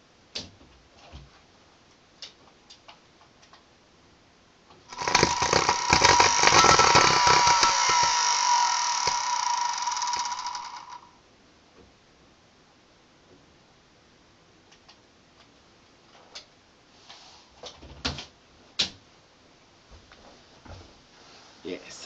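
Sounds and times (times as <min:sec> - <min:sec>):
motor whining and crackling: 0:04.9 - 0:11.0.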